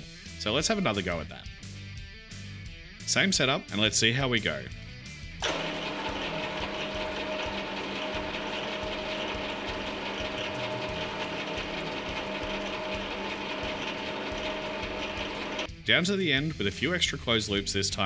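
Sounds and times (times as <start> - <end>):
lathe motor hum and whine: 5.4 - 15.7.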